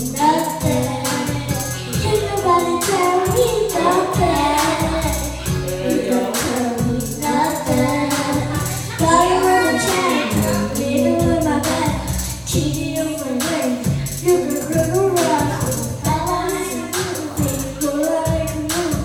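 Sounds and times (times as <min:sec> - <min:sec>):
pop backing track: 0:00.0 - 0:19.0
singing through microphones: 0:00.0 - 0:19.0.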